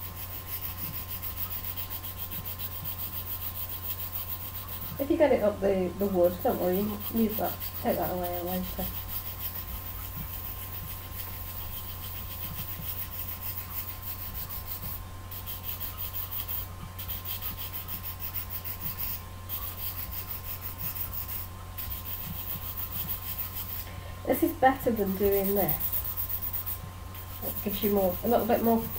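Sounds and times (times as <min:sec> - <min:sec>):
nail file scratching pencil lead: 0:00.0 - 0:28.9.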